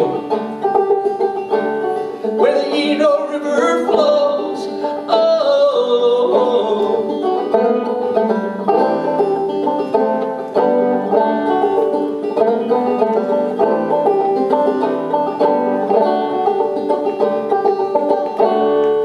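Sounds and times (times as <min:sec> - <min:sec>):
banjo picking quick notes: 0:00.0 - 0:19.0.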